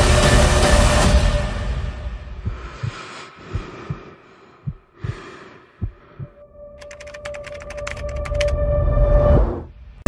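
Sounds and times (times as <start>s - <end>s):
deep heartbeat thumps: 2.2s - 6.4s.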